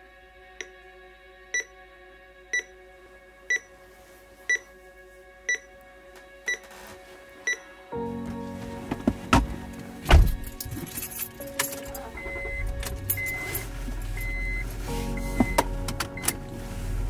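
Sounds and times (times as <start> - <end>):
soft music with held notes: 0.0 - 17.0
alarm clock beeping: 12.1 - 13.6, 14.2 - 14.6, 15.2 - 15.6.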